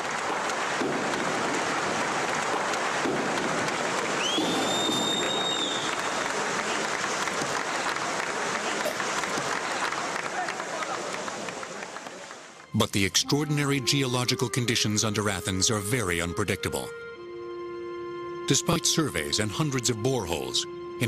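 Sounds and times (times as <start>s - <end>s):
crowd applauding and cheering: 0.0s - 13.1s
shrill whistle: 4.2s - 6.2s.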